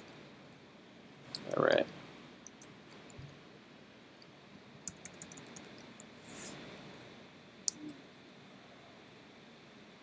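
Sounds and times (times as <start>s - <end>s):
computer mouse clicks: 2.4s - 3.2s, 4.2s - 6.2s, 7.6s - 8.0s.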